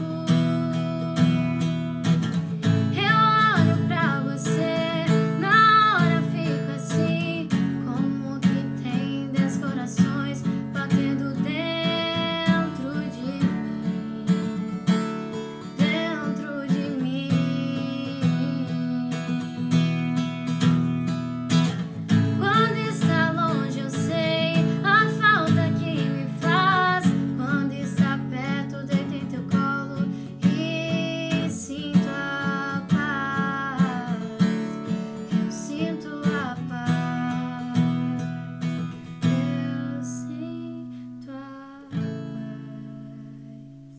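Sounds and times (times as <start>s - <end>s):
strummed acoustic guitar: 0.0s - 43.9s
woman singing a ballad: 0.0s - 43.9s.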